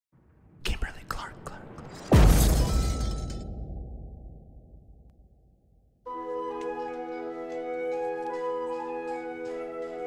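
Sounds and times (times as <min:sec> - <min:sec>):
heavy impact with deep boom: 0:02.1 - 0:05.3.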